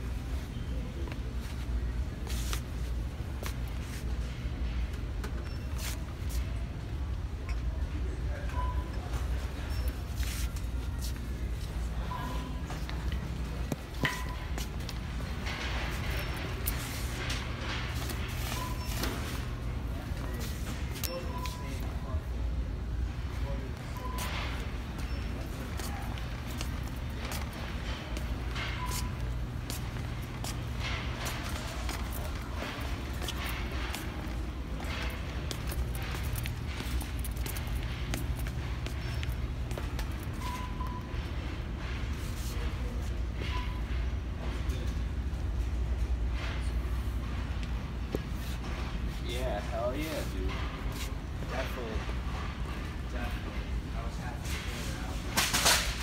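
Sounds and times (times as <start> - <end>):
steady low hum: 0.0 - 56.0
short beeps: 8.5 - 10.0, 12.0 - 12.8, 21.0 - 22.0, 23.9 - 25.5, 40.4 - 41.2
footsteps: 24.2 - 40.6
shopping cart rattling: 24.2 - 42.8, 54.5 - 56.0.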